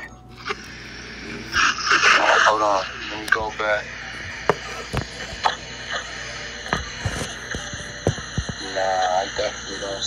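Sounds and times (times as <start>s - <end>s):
faint background music with a beat: 3.0s - 10.0s.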